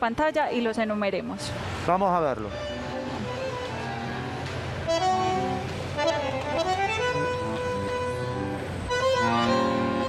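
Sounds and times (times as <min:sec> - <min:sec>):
bandoneon playing chords: 0:01.0 - 0:10.0.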